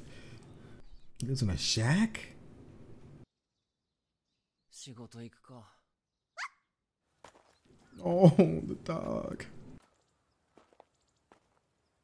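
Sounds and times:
cartoon dog yip: 0:06.4 - 0:06.7.

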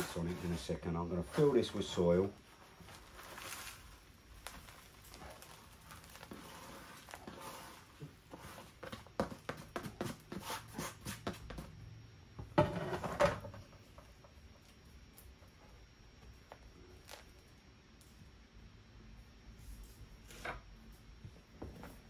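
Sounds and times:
soil scraped from plastic tray: 0:00.0 - 0:01.8.

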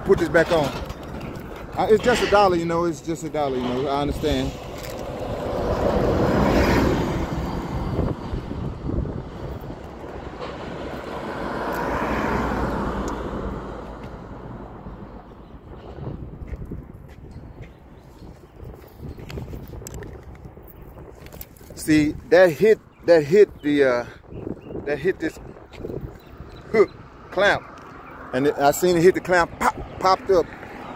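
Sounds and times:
steady low traffic rumble: 0:00.0 - 0:30.9
vehicles passing: 0:00.0 - 0:30.9.

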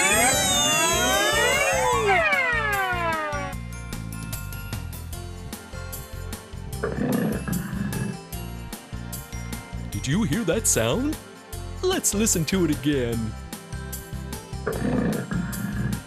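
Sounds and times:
children's music with steady beat: 0:00.0 - 0:15.2
tiger roaring: 0:14.7 - 0:16.0.

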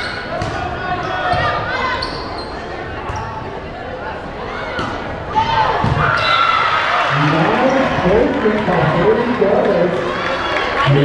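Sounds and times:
people shouting in a gym: 0:00.0 - 0:07.1.

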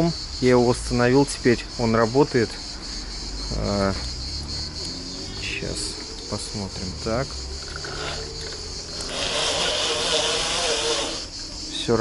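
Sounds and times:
electric motor hiss and whine: 0:04.8 - 0:12.0.

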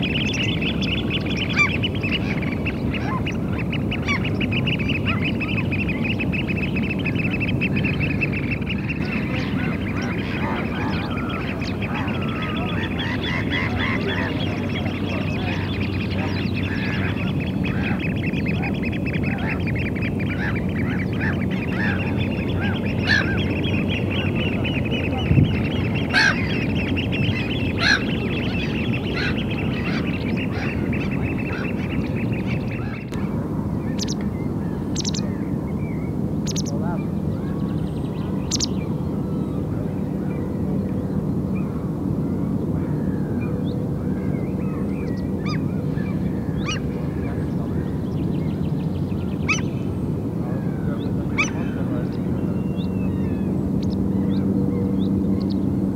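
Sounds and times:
low background rumble: 0:00.0 - 0:55.9
wild birds calling: 0:00.0 - 0:55.9.

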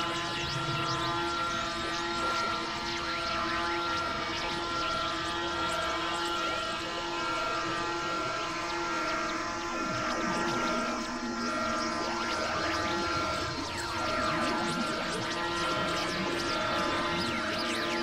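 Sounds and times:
electronic drone tones: 0:00.0 - 0:18.0
swooping chirping electronic glides: 0:00.0 - 0:18.0.

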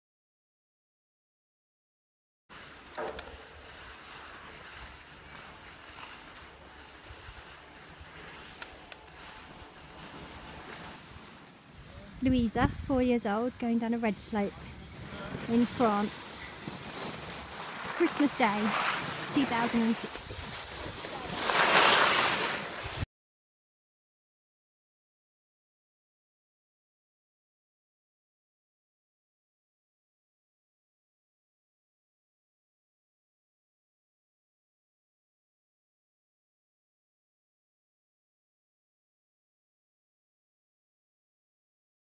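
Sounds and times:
skis gliding over snow: 0:02.5 - 0:23.1
sharp click: 0:02.9 - 0:03.4
wind on microphone: 0:11.8 - 0:13.2, 0:19.0 - 0:21.4.

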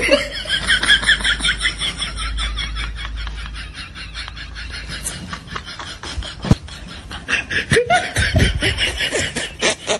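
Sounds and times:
laugh track: 0:00.0 - 0:09.9.

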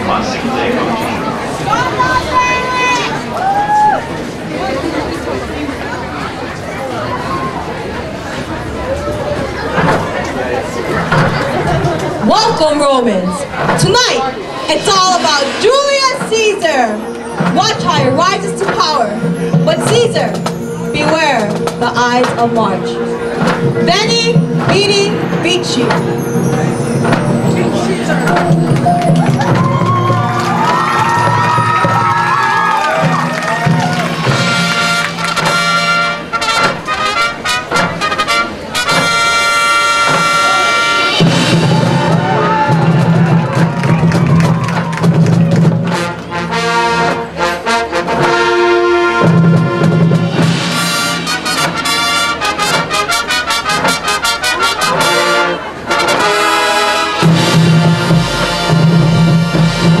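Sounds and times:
drumline: 0:00.0 - 1:00.0
marching band playing brass music: 0:10.9 - 1:00.0.

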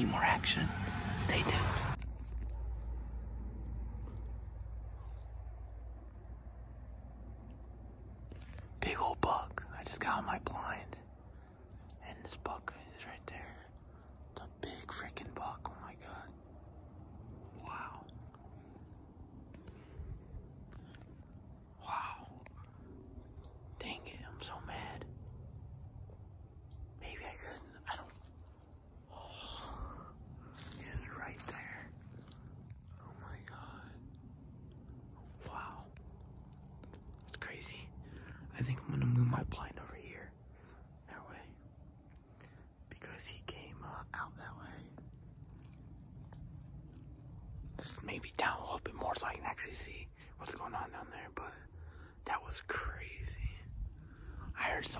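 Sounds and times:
person whispering: 0:00.0 - 0:05.8, 0:08.4 - 0:16.6, 0:17.3 - 0:18.9, 0:21.7 - 0:23.1, 0:23.7 - 0:25.3, 0:27.0 - 0:34.2, 0:35.2 - 0:41.7, 0:42.3 - 0:45.1, 0:47.7 - 0:54.9
rustling: 0:27.0 - 0:38.5.

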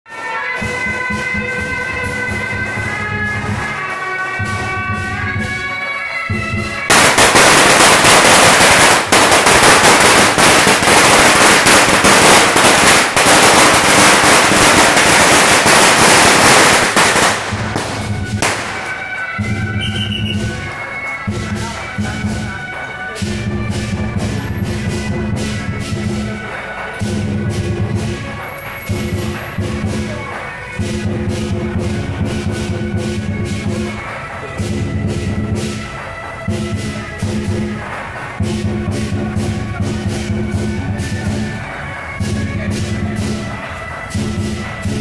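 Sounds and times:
firecrackers crackling: 0:00.1 - 0:45.0
shawms and drums playing a melody: 0:00.1 - 0:45.0.

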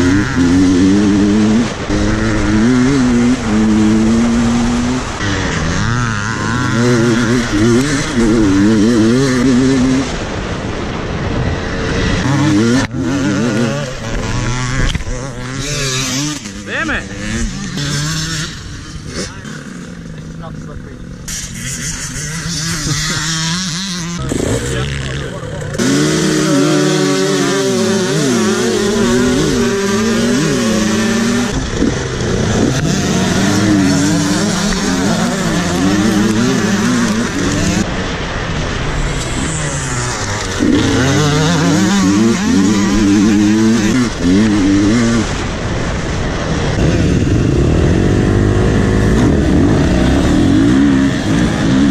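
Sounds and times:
dirt bike engine revving: 0:00.0 - 0:51.9.

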